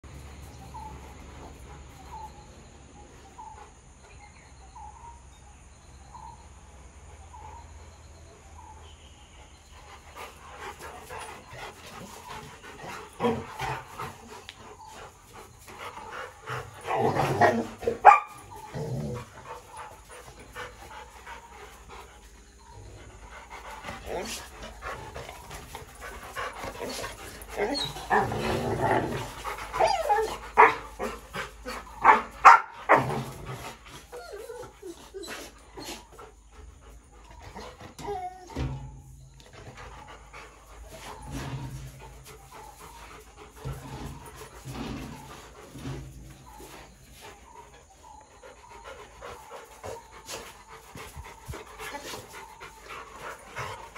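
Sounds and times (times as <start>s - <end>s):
dogs panting: 0.0s - 5.0s, 6.8s - 53.9s.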